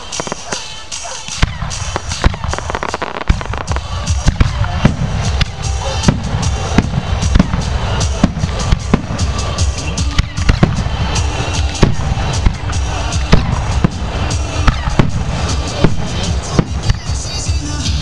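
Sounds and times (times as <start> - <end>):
fireworks bangs and crackles: 0.0 - 18.0.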